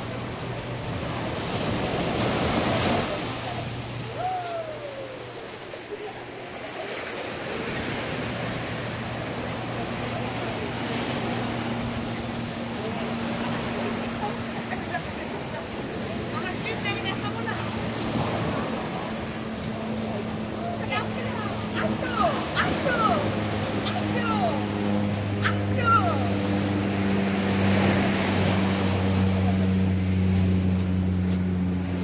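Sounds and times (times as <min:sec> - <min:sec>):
small waves breaking on beach: 0:00.0 - 0:32.0
people's voices: 0:02.6 - 0:07.8, 0:09.4 - 0:26.8.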